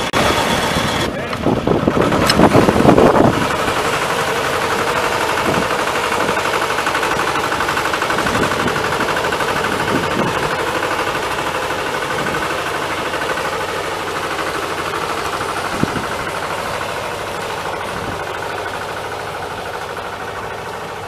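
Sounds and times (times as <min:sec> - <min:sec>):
tractor engine running under load: 0:00.0 - 0:21.0.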